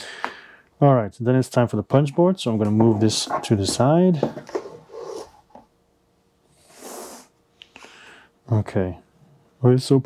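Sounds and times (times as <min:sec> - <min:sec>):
cardboard rustling: 0:02.6 - 0:05.5.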